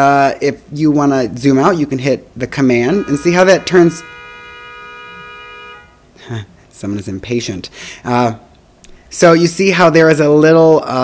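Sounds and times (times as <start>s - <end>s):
car horn honking: 2.7s - 6.1s.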